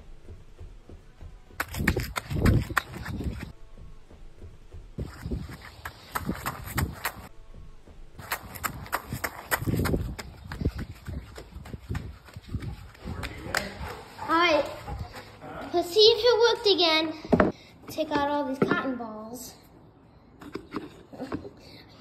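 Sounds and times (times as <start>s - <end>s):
footsteps on rough ground: 0.1s - 15.3s.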